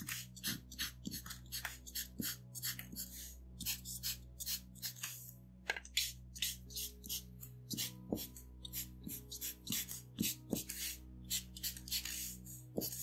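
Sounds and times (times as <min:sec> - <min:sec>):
marker scratching on paper: 0:00.0 - 0:05.3, 0:05.9 - 0:13.0
soft background music: 0:00.0 - 0:13.0.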